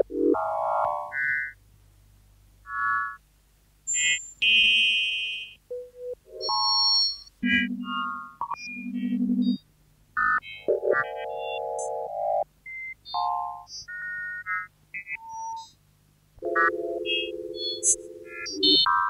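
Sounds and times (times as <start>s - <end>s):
electronic tones: 16.4s - 19.0s.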